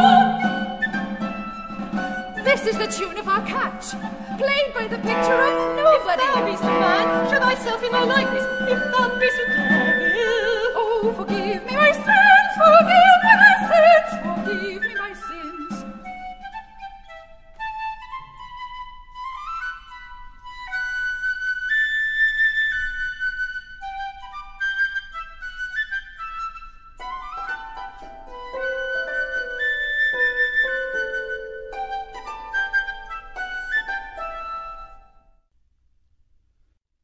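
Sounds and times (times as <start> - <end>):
flute playing lively tune: 0.0 - 35.4.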